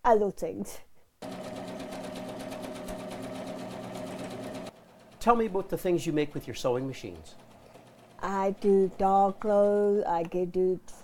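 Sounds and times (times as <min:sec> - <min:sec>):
sewing machine stitching: 0:01.2 - 0:10.0.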